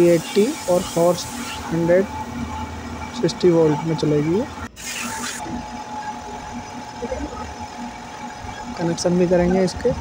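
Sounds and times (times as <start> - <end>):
workshop hum: 0.0 - 10.0.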